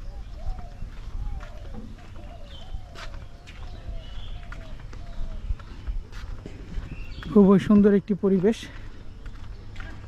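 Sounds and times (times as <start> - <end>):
wind rumble on microphone: 0.0 - 7.9
footsteps on concrete: 0.0 - 10.0.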